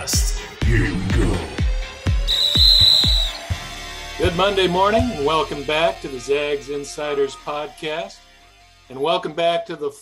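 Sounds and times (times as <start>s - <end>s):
deep kick drum beat: 1.6s - 5.3s
high steady whistle tone: 2.3s - 3.6s.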